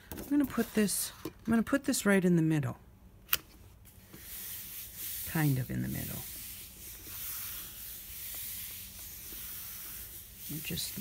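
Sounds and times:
hand rubbing over cardstock: 0:03.9 - 0:11.0.

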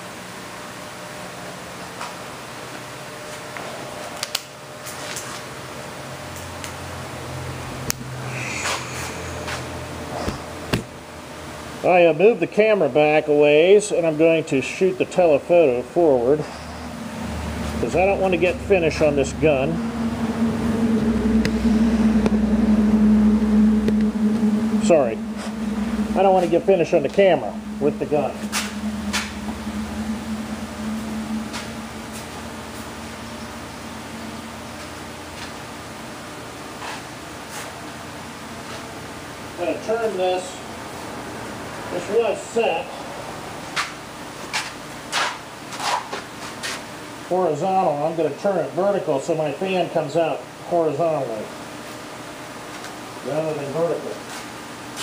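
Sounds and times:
machine humming: 0:06.6 - 0:11.8, 0:15.3 - 0:44.4
deep rumble: 0:15.9 - 0:36.6.

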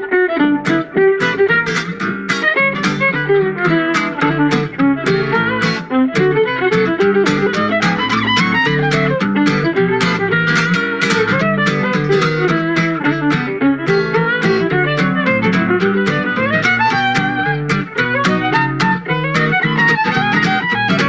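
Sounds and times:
acoustic guitar strumming: 0:00.0 - 0:21.0
fiddle melody: 0:00.0 - 0:21.0.

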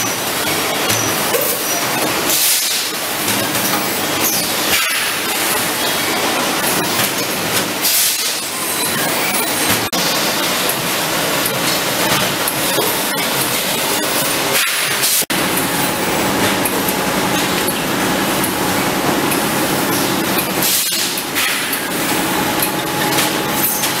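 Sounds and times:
machinery clattering: 0:00.0 - 0:24.0.

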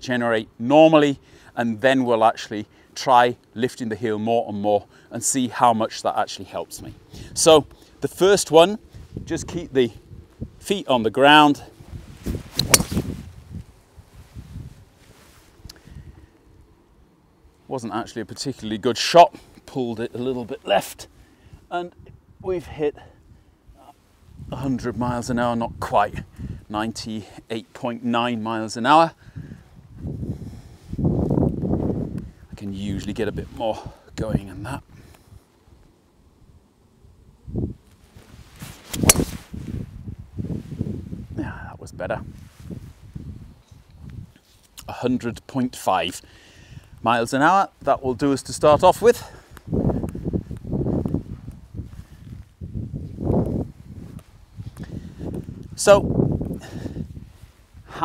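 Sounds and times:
wind rumbling on microphone: 0:06.8 - 0:17.4, 0:21.4 - 0:27.0, 0:29.2 - 0:44.4, 0:47.8 - 0:58.0
golf club swing whoosh: 0:11.9 - 0:13.6, 0:38.6 - 0:39.9
golf club striking ball: 0:12.6 - 0:13.1, 0:38.9 - 0:39.4.

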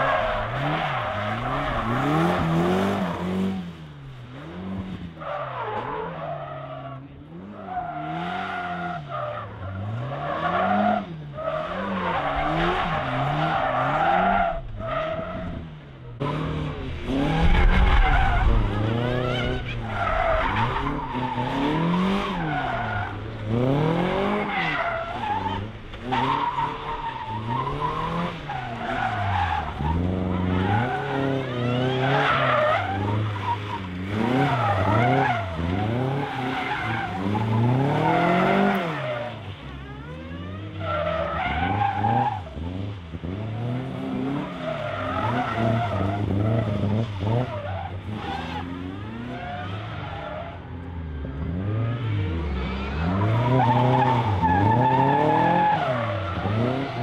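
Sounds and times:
car engines revving: 0:00.0 - 0:57.0
tyres skidding on tarmac: 0:00.0 - 0:57.0.

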